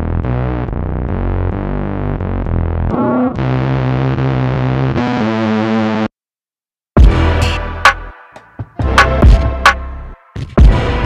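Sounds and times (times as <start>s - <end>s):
electronic music with synth chords: 0.0s - 6.1s, 7.0s - 11.0s.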